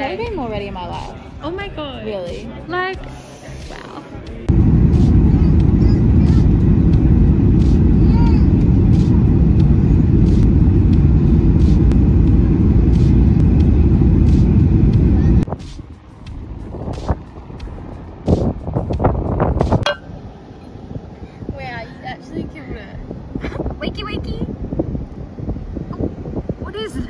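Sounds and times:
airliner cabin rumble: 0:04.4 - 0:15.6.

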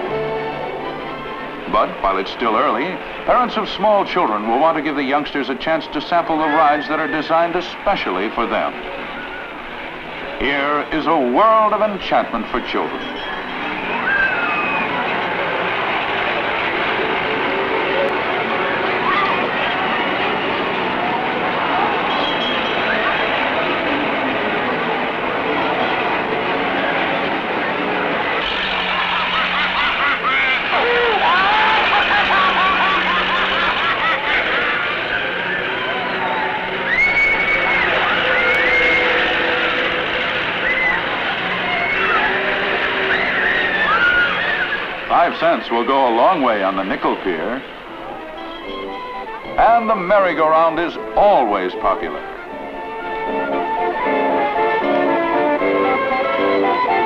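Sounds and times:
faint sounds rising and falling in pitch: 0:00.0 - 0:50.2
crowd noise: 0:00.0 - 0:57.0
ride machinery: 0:00.0 - 0:57.0
children shrieking and squealing: 0:13.1 - 0:15.3, 0:18.8 - 0:20.2, 0:28.4 - 0:45.1
din of voices: 0:43.7 - 0:47.8.

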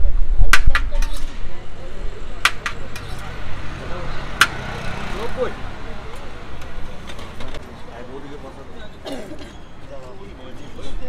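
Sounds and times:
faint background chatter: 0:00.0 - 0:11.0
traffic rumbling: 0:00.0 - 0:11.0.

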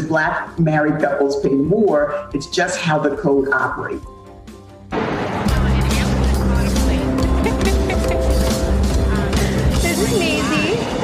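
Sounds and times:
news theme music: 0:00.0 - 0:11.0.

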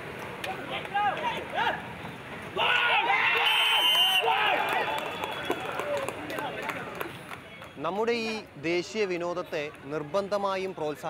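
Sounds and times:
players shouting and calling: 0:00.4 - 0:07.2.

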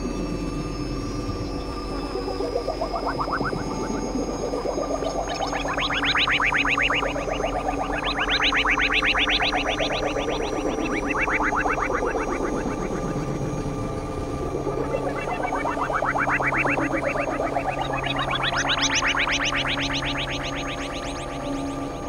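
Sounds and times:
pulsing synth notes: 0:00.0 - 0:22.0
synthesizer drone: 0:00.0 - 0:22.0.

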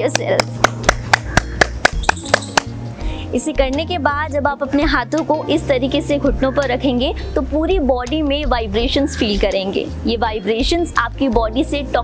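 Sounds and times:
background music: 0:00.0 - 0:12.0
person clapping hands quickly: 0:00.1 - 0:02.7.

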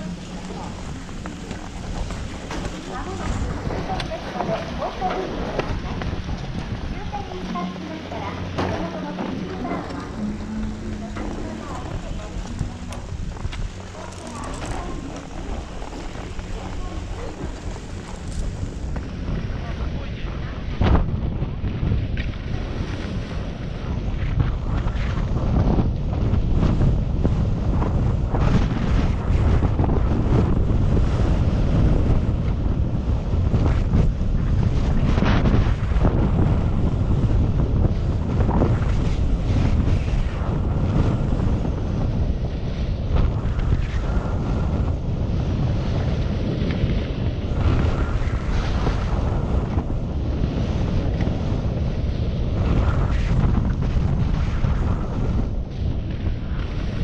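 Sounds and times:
skis scraping on snow: 0:00.0 - 0:20.3, 0:33.2 - 0:57.0
wind buffeting microphone: 0:00.0 - 0:57.0.

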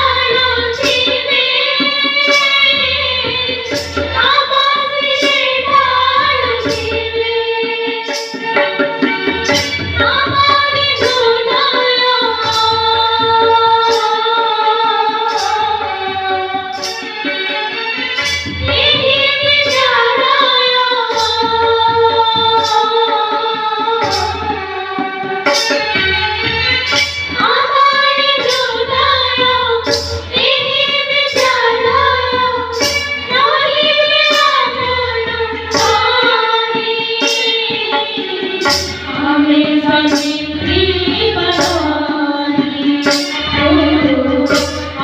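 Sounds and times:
girls singing slow song: 0:00.0 - 0:08.3, 0:10.0 - 0:17.0, 0:18.7 - 0:25.7, 0:27.3 - 0:45.0.

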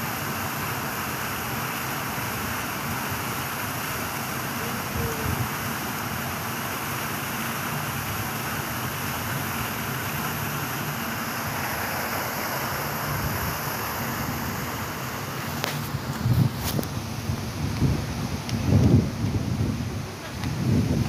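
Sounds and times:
outdoor background rush: 0:00.0 - 0:21.0.

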